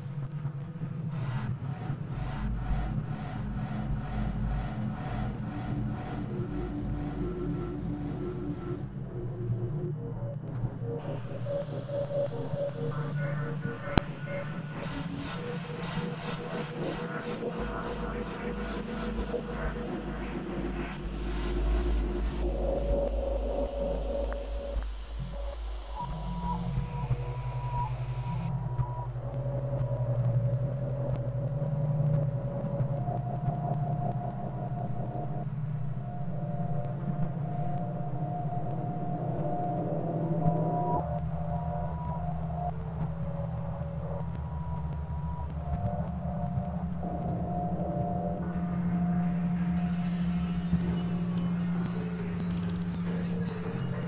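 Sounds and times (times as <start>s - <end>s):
low pulsing drone: 0.0s - 54.0s
thin steady electronic tones: 11.0s - 28.5s.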